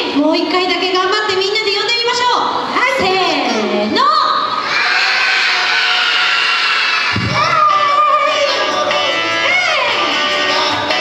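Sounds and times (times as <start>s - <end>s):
children shouting together: 4.5s - 10.0s
cheering: 4.6s - 8.2s
low thump: 7.1s - 7.5s.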